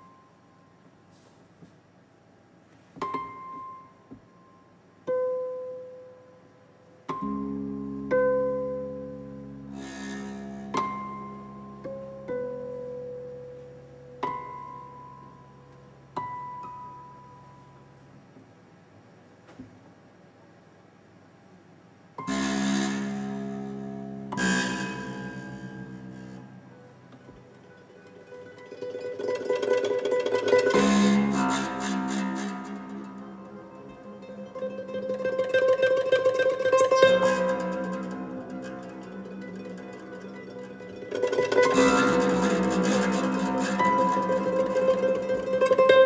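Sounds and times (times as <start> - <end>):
harp notes plucked: 22.2 - 46.0.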